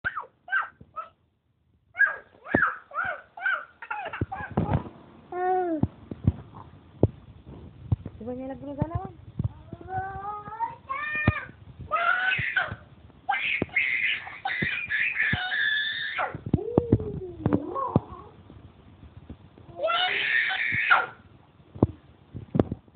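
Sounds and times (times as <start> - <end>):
small child shrieking: 2.0 - 4.6, 11.9 - 16.4, 19.8 - 21.2.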